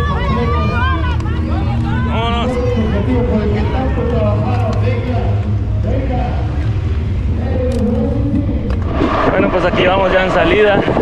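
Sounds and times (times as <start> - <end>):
crowd chatter: 0.0 - 11.0
wind rumble: 0.0 - 11.0.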